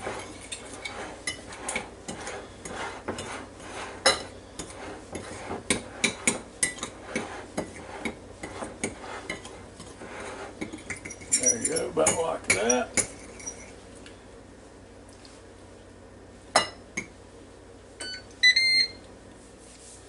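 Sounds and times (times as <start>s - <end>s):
fork scraping ceramic bowl: 0.0s - 13.7s.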